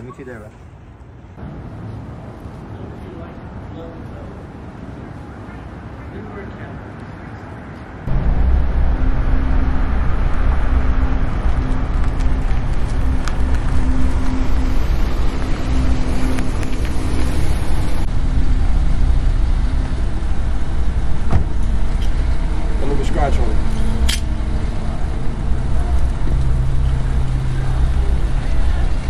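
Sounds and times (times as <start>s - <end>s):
car engine rumbling: 8.1s - 29.0s.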